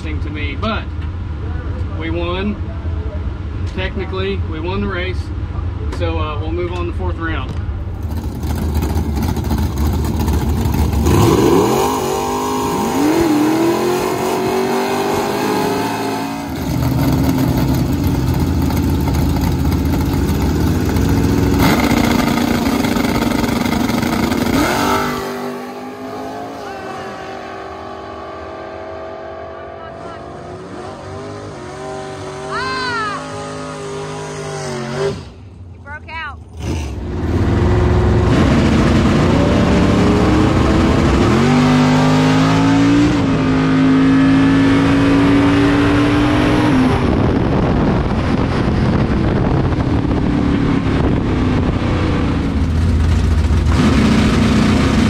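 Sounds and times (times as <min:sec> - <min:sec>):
drag car engine running: 0:07.8 - 0:14.4, 0:16.4 - 0:27.2, 0:47.1 - 0:55.0
rising and falling whine: 0:08.2 - 0:35.4, 0:37.1 - 0:55.0.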